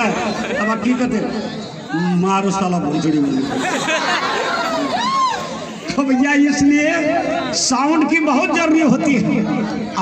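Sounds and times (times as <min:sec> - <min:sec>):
man talking over loudspeaker: 0:00.0 - 0:03.5, 0:05.9 - 0:10.0.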